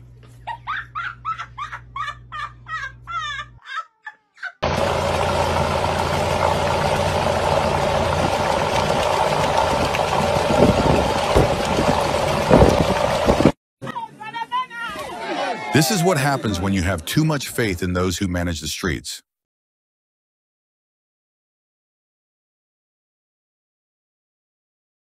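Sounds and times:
people laughing: 0.3s - 4.6s, 15.3s - 18.2s
car engine running: 4.6s - 13.5s.

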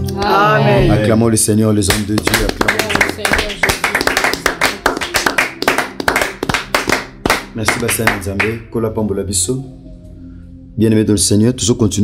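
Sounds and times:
group clapping hands: 1.8s - 8.6s.

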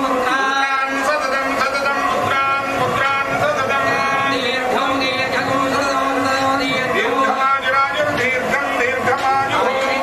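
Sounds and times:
priests chanting: 0.0s - 10.0s.

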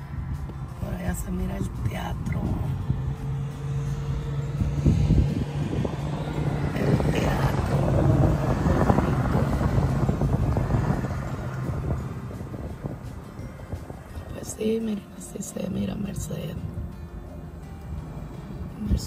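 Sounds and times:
car engine hum from inside: 0.0s - 19.0s
road and traffic noise: 0.0s - 19.0s.

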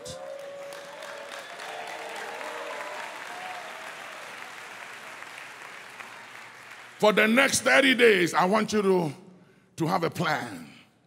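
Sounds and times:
congregation applauding: 0.0s - 8.2s.

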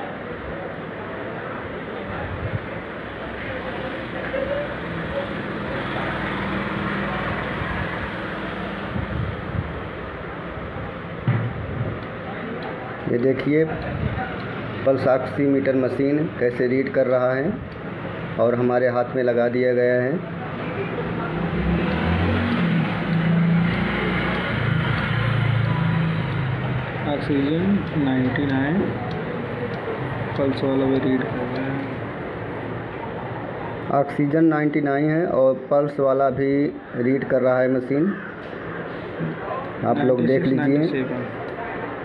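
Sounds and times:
road traffic rumble: 0.0s - 42.0s.

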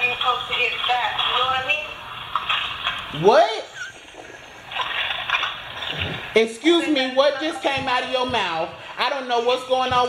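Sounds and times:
garbled phone speaker static: 0.0s - 6.5s.

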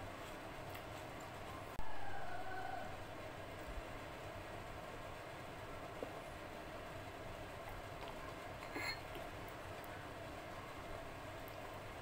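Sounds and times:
glass clinking: 8.6s - 9.1s.

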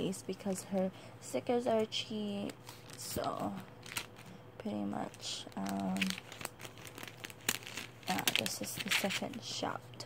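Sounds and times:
packaging crinkling and rustling: 1.7s - 9.6s.

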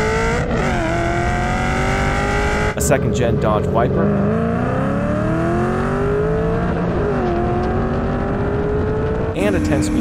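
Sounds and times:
car engines at full throttle: 0.0s - 10.0s.

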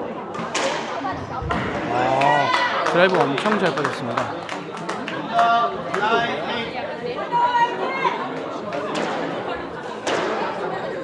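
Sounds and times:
people chattering in echoing hall: 0.0s - 11.0s.

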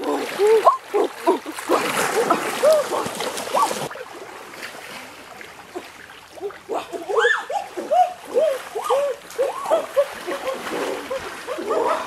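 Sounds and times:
water splashing and gurgling: 0.0s - 12.0s.

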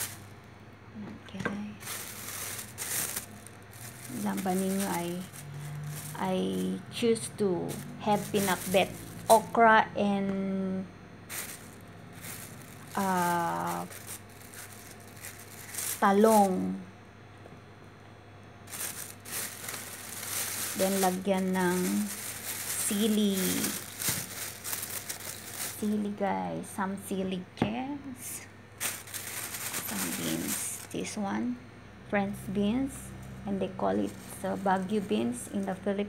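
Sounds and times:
plastic bag rustling: 0.0s - 0.3s, 1.7s - 9.6s, 11.3s - 16.8s, 18.6s - 26.2s, 28.8s - 31.2s, 33.9s - 35.8s.

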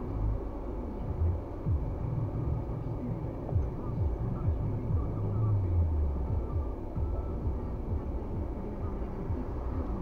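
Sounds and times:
low drifting hum: 0.0s - 10.0s
low vehicle rumble: 0.0s - 10.0s.

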